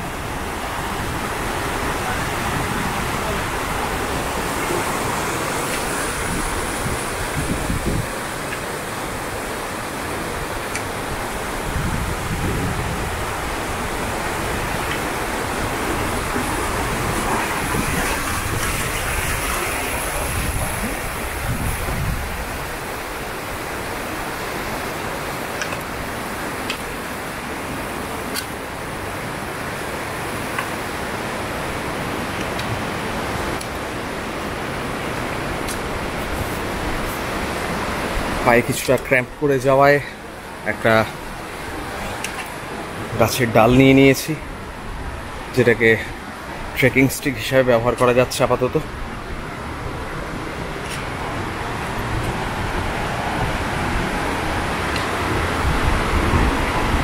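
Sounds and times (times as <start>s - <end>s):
rushing outdoor noise: 0.0s - 57.0s.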